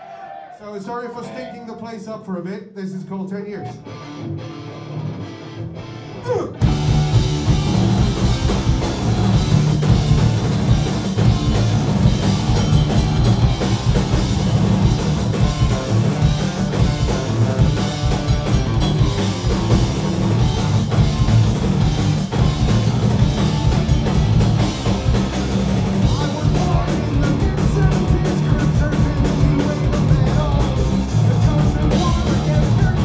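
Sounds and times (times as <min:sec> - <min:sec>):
punk rock band playing: 0:03.7 - 0:33.0.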